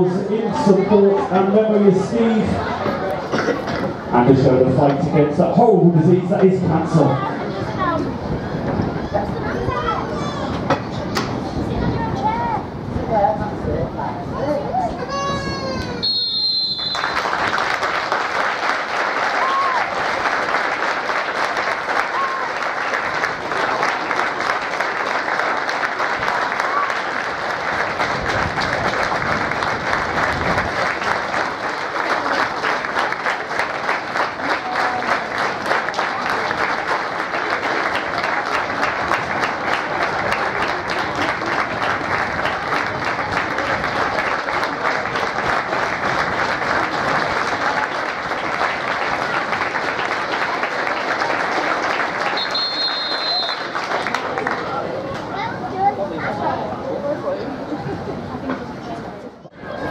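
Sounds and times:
crowd applauding: 16.0 - 55.1.

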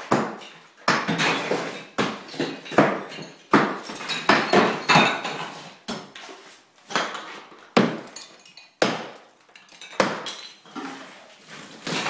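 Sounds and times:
demolition knocks on brick: 0.0 - 6.1.

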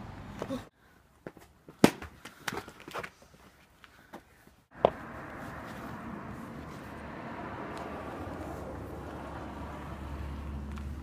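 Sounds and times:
footsteps on pavement: 1.2 - 7.0, 10.1 - 11.0.

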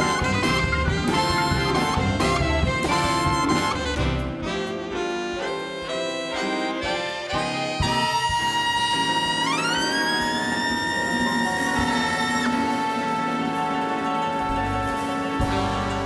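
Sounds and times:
big band jazz with brass: 0.0 - 16.0.

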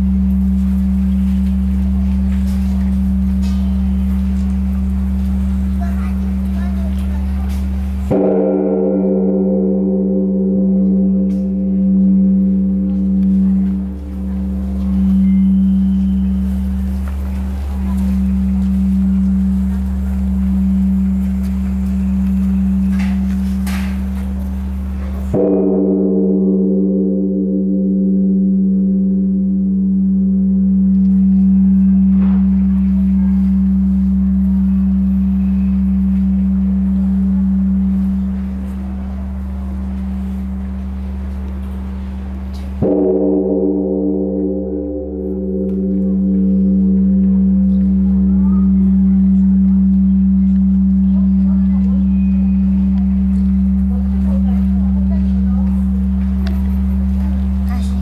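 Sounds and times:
large temple bell ringing: 0.0 - 58.0.

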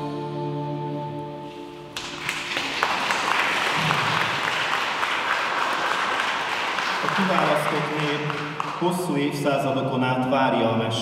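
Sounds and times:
audience applauding: 1.9 - 9.4.

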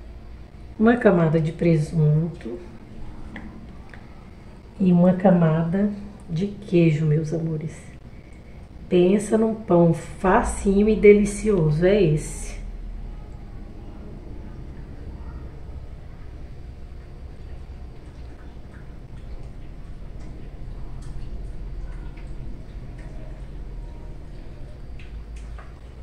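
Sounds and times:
low background hum: 0.0 - 26.0.

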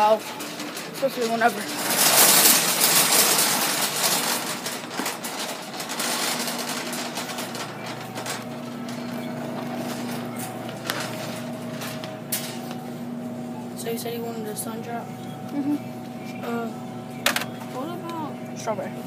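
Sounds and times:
shopping cart rolling: 0.0 - 16.7
steady hum: 0.0 - 19.0.

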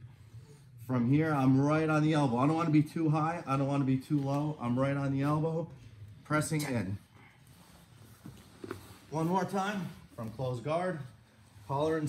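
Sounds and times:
faint rustling on mats: 4.0 - 12.0.

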